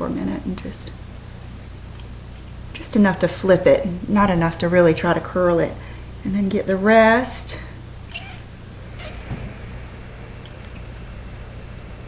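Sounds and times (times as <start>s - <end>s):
steady low hum: 0.0s - 12.0s
pet whining faintly: 8.1s - 9.3s.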